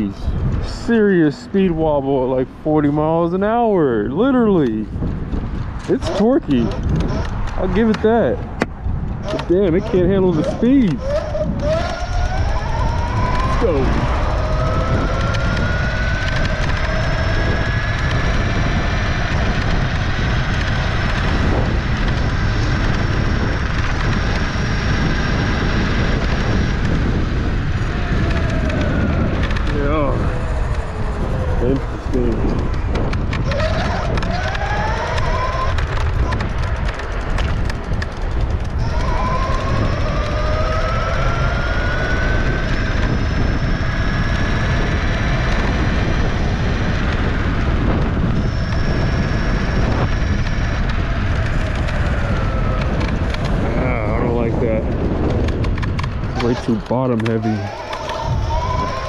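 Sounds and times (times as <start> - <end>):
electric scooter motor whine: 0.0 - 59.0
wind rumble on microphone: 0.0 - 59.0.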